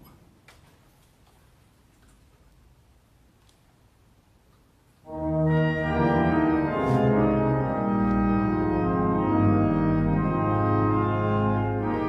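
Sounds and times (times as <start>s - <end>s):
faint clicks and rustles: 0.0s - 5.1s.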